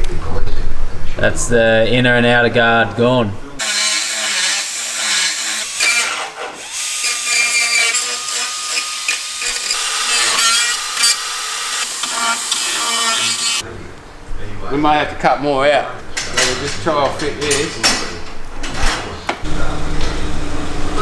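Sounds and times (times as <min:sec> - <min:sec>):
power drill running: 0:03.6 - 0:13.6.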